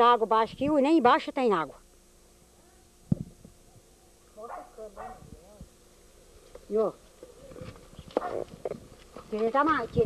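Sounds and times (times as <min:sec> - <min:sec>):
dog yelping: 0:04.4 - 0:05.3, 0:08.2 - 0:08.5.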